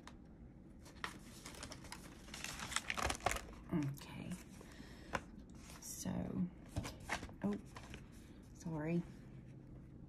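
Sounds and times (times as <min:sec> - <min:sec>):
paper rustling: 0:00.8 - 0:03.6.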